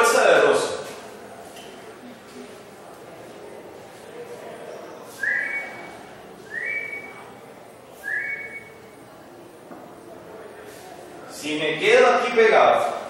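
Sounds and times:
high whistled notes: 5.2s - 5.9s, 6.5s - 7.2s, 8.0s - 8.8s.

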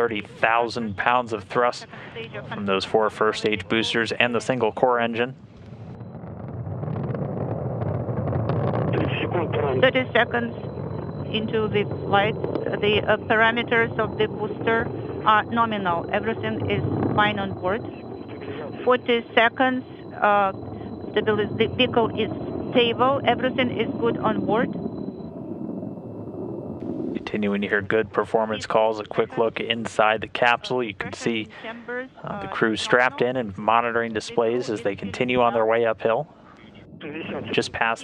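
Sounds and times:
rocket engine rumble with crackle: 0.0s - 38.0s.

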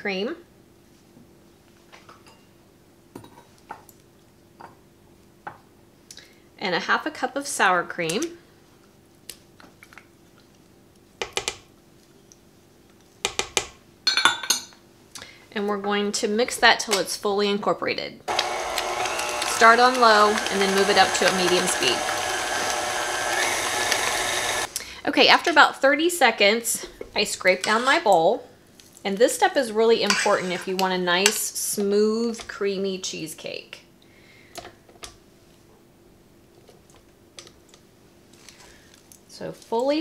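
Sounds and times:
stand mixer motor running: 18.3s - 24.7s.

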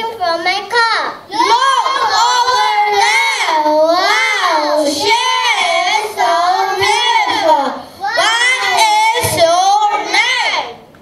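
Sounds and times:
children singing into microphones: 1.3s - 10.4s.

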